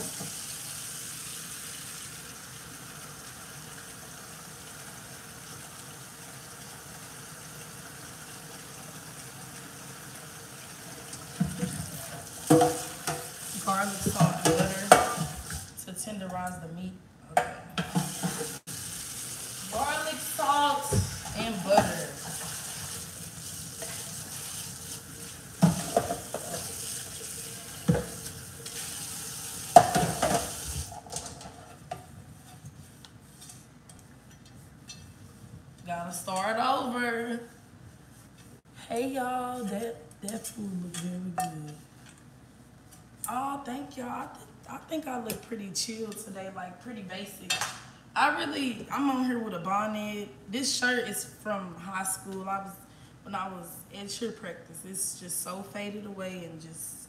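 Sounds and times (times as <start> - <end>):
frying pan sizzling: 0.0 - 15.8, 17.8 - 31.8
pans and utensils clattering: 11.3 - 15.7, 17.7 - 18.6, 25.6 - 28.8, 29.7 - 32.7.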